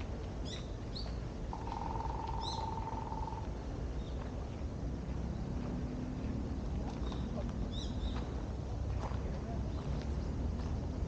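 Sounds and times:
low background rumble: 0:00.0 - 0:11.0
birds chirping: 0:00.5 - 0:03.4.

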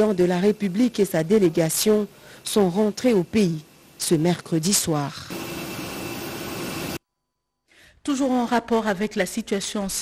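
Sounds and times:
jet airliner humming with whine: 0:00.0 - 0:07.0.

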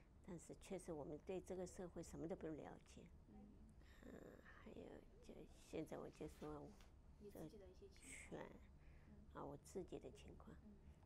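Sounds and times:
woman talking quietly: 0:00.3 - 0:11.0.

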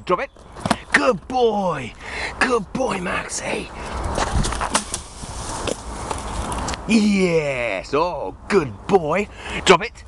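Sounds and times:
low rumble of wind on microphone: 0:03.2 - 0:06.9
footsteps crunching on gravel: 0:03.8 - 0:06.8.

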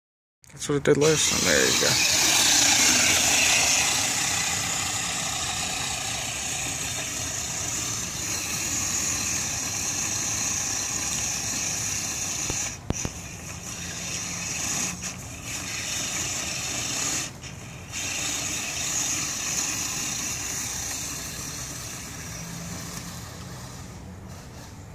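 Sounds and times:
electric motor and gears whining: 0:00.9 - 0:24.9.

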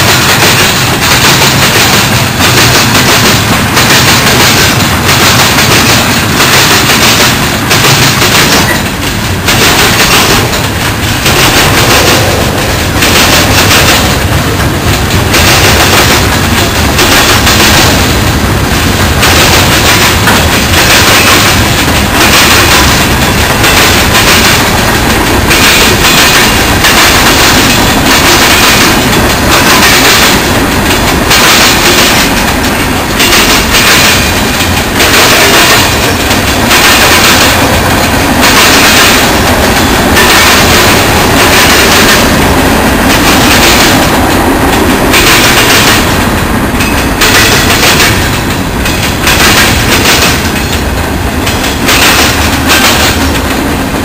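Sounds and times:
clickety-clack of rail joints: 0:00.0 - 0:54.0
train wheels rumbling on rail: 0:00.0 - 0:54.0.

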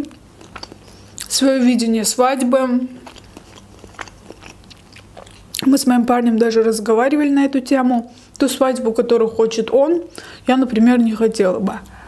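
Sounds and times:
person chewing food: 0:00.0 - 0:01.4, 0:02.8 - 0:05.7
wet mouth clicks: 0:00.1 - 0:01.3, 0:02.9 - 0:05.7.

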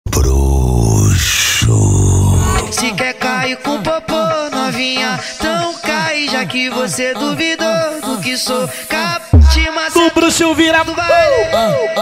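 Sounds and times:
deep groan-like voice effect: 0:00.1 - 0:02.9.

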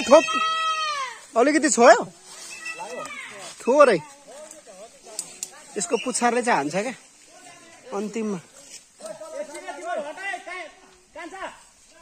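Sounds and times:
people calling out: 0:00.0 - 0:06.4.

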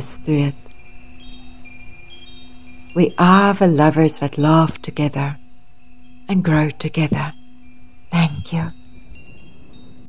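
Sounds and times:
chimes ringing: 0:00.0 - 0:10.0
faint low hum: 0:00.0 - 0:10.0.

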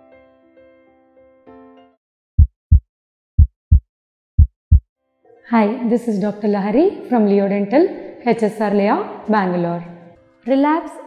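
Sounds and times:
low heartbeat thumps: 0:02.4 - 0:02.8, 0:03.4 - 0:04.8.

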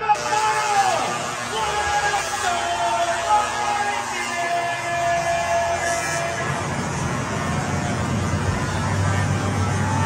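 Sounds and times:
crowd rumble: 0:00.2 - 0:10.0.

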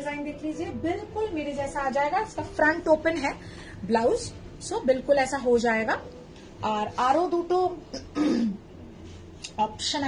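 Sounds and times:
woman clearing throat: 0:07.9 - 0:08.7.

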